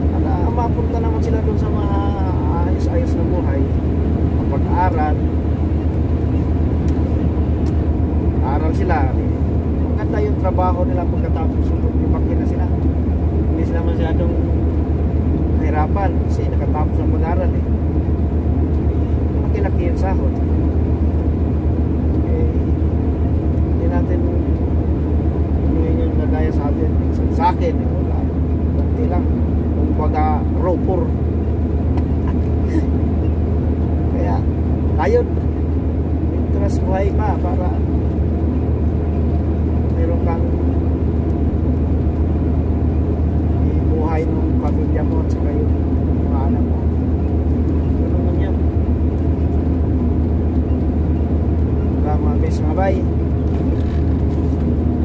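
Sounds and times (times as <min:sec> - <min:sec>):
truck engine and road drone: 0:00.0 - 0:55.0.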